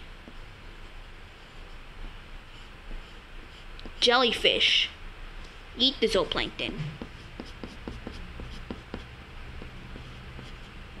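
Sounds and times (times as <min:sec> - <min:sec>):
steady low hum: 0:00.0 - 0:11.0
pencil scratching on paper: 0:07.0 - 0:11.0.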